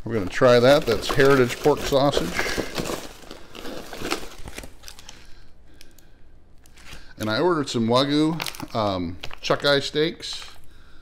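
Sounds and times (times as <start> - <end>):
packaging rustling and crinkling: 0.0 - 6.0, 6.6 - 10.7.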